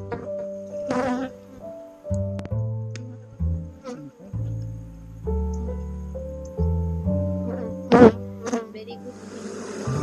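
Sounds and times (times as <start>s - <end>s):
honey bees buzzing: 0.0s - 1.9s, 2.9s - 4.6s, 7.4s - 10.0s
background music with bass line: 2.0s - 8.8s.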